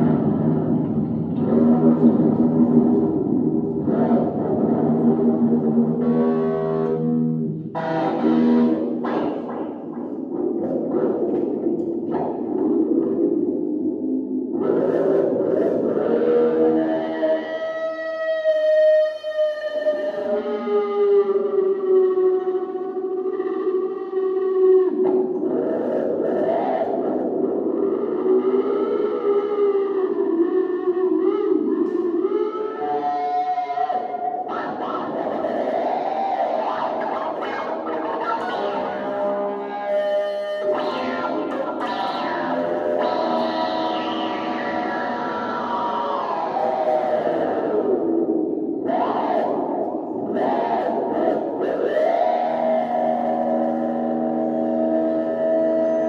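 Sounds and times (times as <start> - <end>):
electric guitar with echo and distortion: 0.0 - 56.0.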